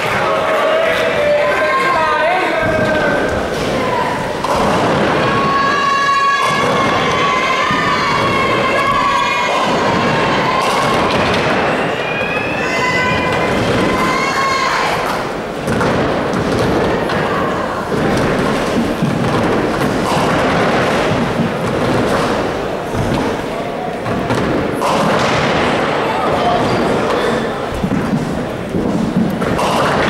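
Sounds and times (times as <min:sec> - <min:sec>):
spectators shouting: 0:00.0 - 0:27.7
bowling balls thudding and rolling: 0:00.0 - 0:30.0.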